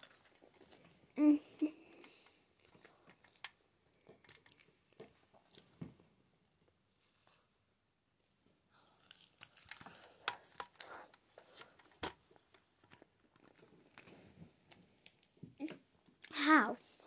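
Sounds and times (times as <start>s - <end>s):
child chewing food: 0.0s - 5.8s, 8.7s - 17.0s.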